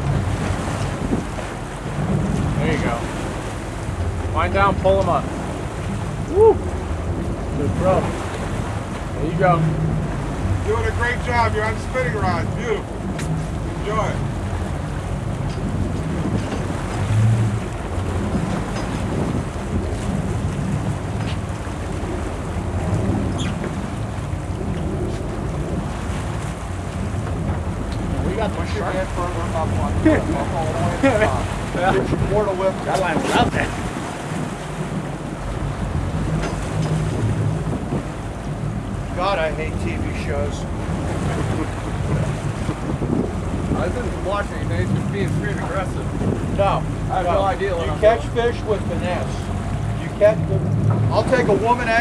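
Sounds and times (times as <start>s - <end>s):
boat engine running: 0.0s - 52.0s
low bump: 0.0s - 52.0s
water washing along hull: 0.0s - 52.0s
wind buffeting microphone: 0.0s - 52.0s.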